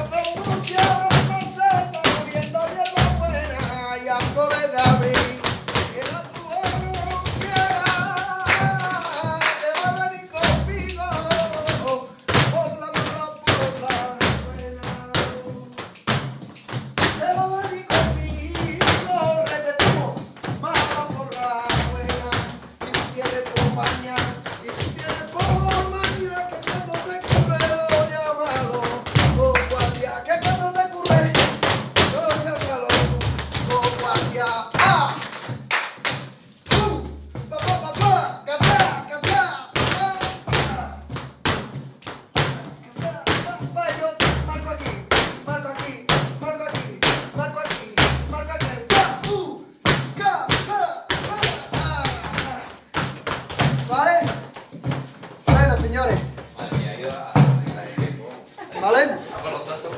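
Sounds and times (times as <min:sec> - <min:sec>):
feet stamping: 0:00.0 - 0:59.9
flamenco music: 0:00.0 - 0:59.9.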